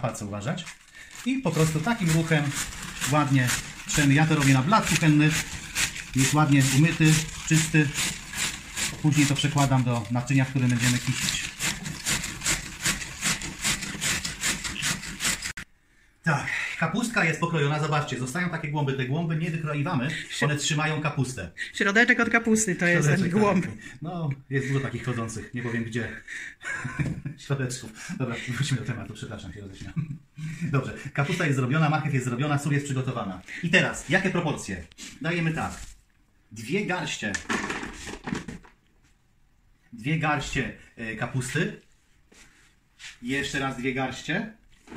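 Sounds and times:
cabbage scraping over shredder blades: 0.5s - 15.6s.

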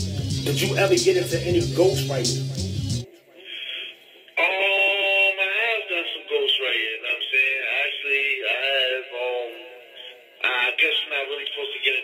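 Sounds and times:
man rapping: 0.0s - 2.7s, 4.4s - 12.0s
thin music: 0.0s - 3.1s.

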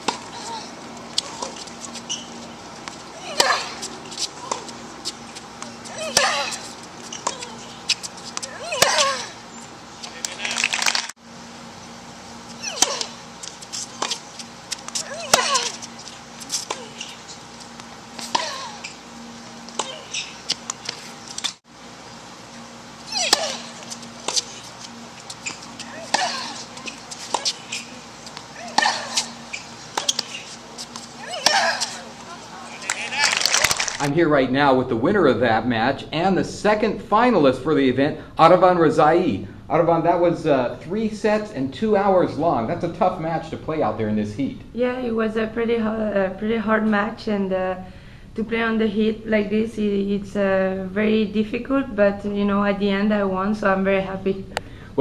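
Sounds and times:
tennis racket striking ball: 1.2s - 9.4s, 12.6s - 19.0s, 19.6s - 21.5s, 23.1s - 33.7s
player grunting: 31.2s - 33.8s.

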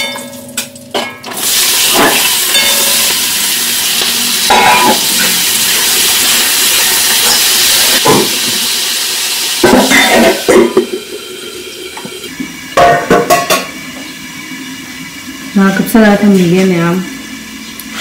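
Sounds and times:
food sizzling in hot oil: 1.2s - 18.0s.

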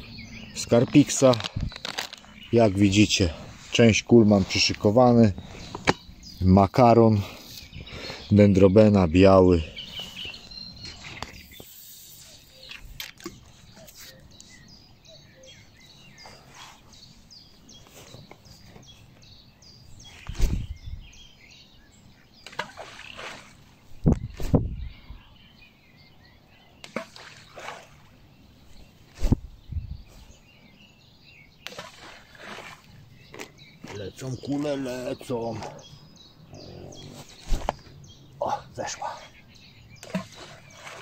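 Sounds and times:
bait balls splashing into river: 22.4s - 23.6s, 26.8s - 28.1s, 31.6s - 33.5s.

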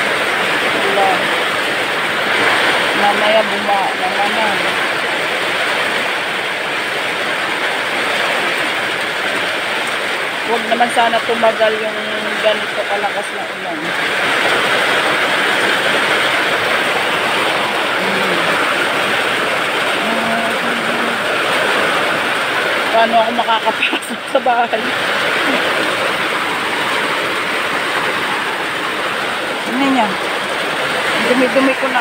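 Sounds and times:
heavy rain pouring: 0.0s - 32.0s.

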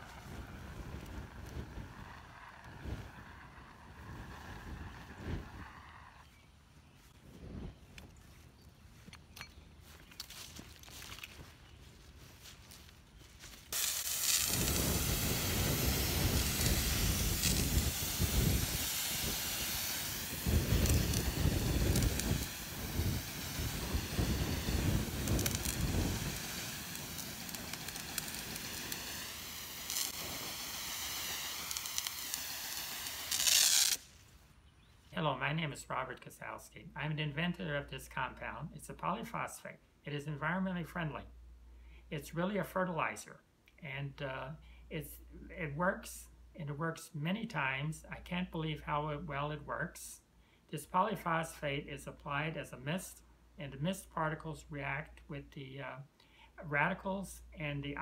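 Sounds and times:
mist nozzle hissing: 13.7s - 34.0s.

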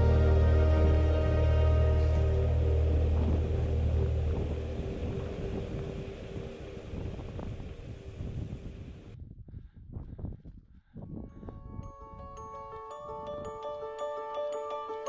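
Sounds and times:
drone-like chord: 0.0s - 9.1s
deep bass: 0.0s - 9.4s.

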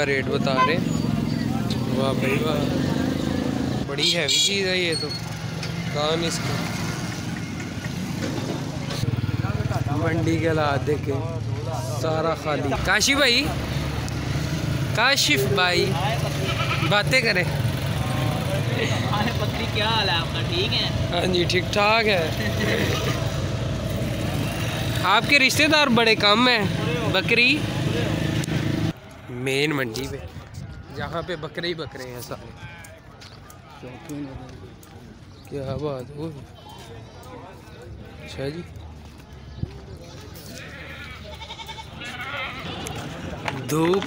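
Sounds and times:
vehicle engine humming: 0.0s - 29.3s
market chatter: 0.0s - 44.0s
people's voices: 0.0s - 44.0s
goat bleating: 16.3s - 17.0s, 40.5s - 43.2s.

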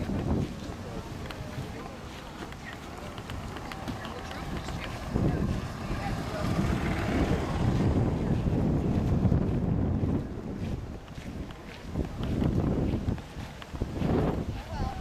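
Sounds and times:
faint voices: 0.0s - 15.0s
wind buffeting microphone: 0.0s - 15.0s.

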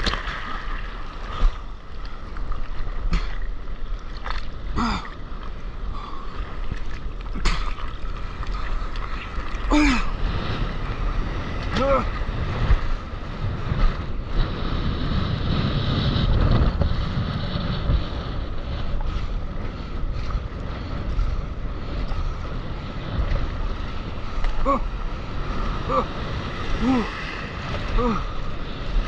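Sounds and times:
whitewater splashing: 0.0s - 14.6s, 20.1s - 29.0s
rushing surf: 0.0s - 29.0s
wind buffeting microphone: 0.0s - 29.0s
person exclaiming oh: 11.8s - 12.1s, 24.6s - 24.9s, 25.9s - 26.1s, 26.8s - 27.2s.

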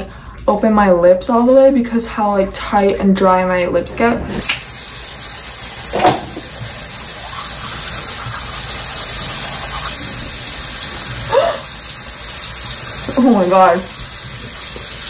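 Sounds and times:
tap water running into sink: 4.4s - 15.0s
toothbrush brushing teeth: 6.7s - 15.0s.

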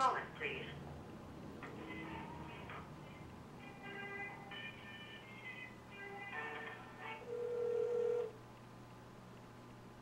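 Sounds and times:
on-hold music over telephone: 1.6s - 8.3s
steady telephone tone: 7.3s - 8.4s.

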